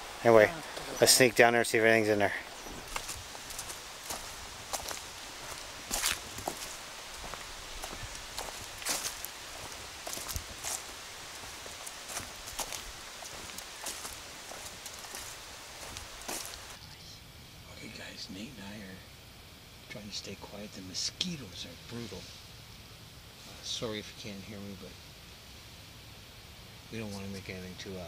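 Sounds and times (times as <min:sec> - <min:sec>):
footsteps crunching on dry leaves: 0:02.2 - 0:16.8.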